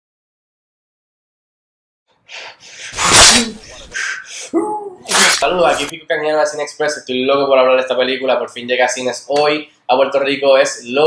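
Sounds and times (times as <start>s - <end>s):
man shouting harshly: 2.9s - 5.9s.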